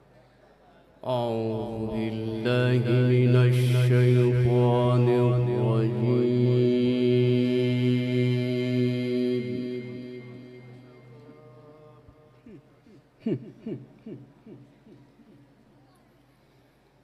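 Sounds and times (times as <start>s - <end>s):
man chanting recitation: 1.0s - 12.6s.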